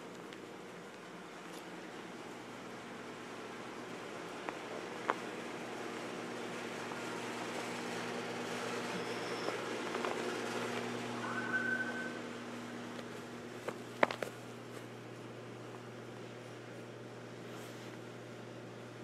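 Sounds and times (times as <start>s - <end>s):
low mechanical hum: 0.0s - 19.0s
brief high tone: 8.9s - 9.6s, 11.2s - 12.3s.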